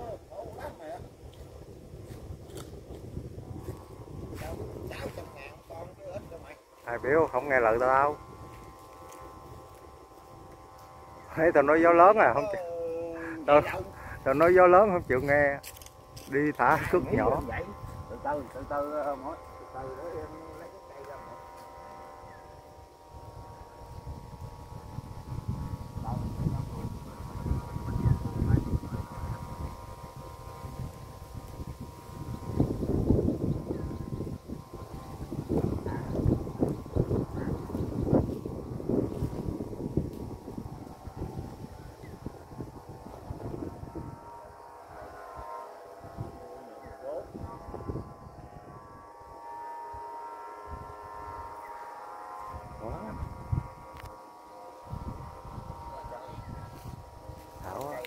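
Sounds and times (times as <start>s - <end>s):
voices talking: 0.0s - 1.5s, 3.4s - 31.3s, 31.9s - 58.0s
wind buffeting microphone: 0.0s - 51.6s, 52.2s - 58.0s
faint steady hum: 0.0s - 58.0s.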